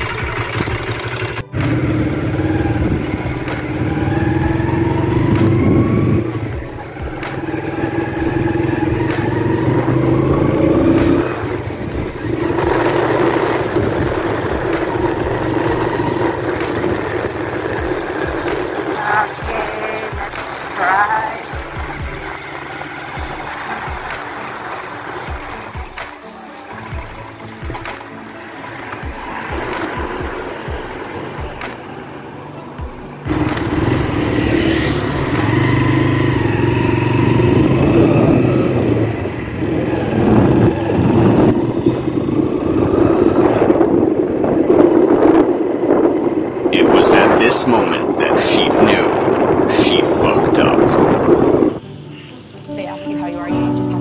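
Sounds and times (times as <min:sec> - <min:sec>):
motorcycle engine running: 0:00.0 - 0:52.9
background music: 0:00.0 - 0:54.0.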